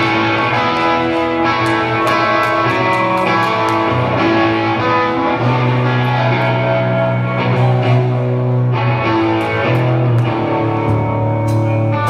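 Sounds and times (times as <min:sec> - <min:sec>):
rock band playing: 0:00.0 - 0:12.0.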